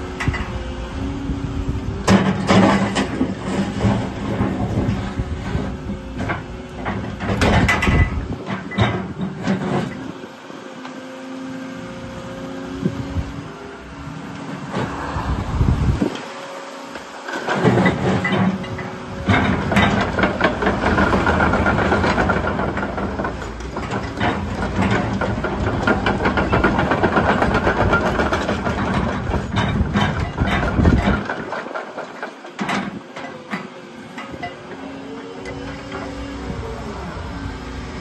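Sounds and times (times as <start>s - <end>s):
excavator engine running: 0.0s - 38.0s
hydraulic whine: 32.9s - 38.0s.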